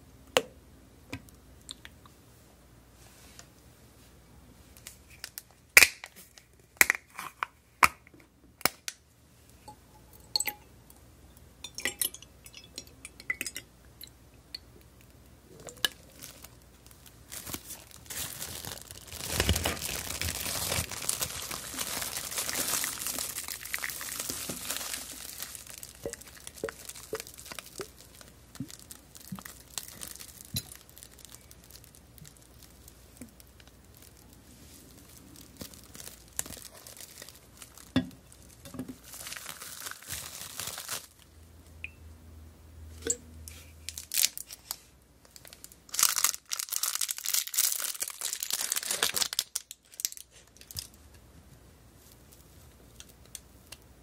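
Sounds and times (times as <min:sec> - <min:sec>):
plastic film crinkling: 0:15.5 - 0:41.3, 0:43.9 - 0:51.0.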